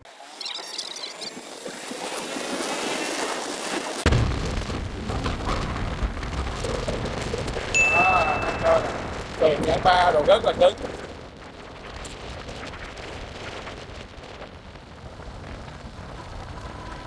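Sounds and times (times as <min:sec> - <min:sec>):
wind rumble on microphone: 0:04.1 - 0:17.0.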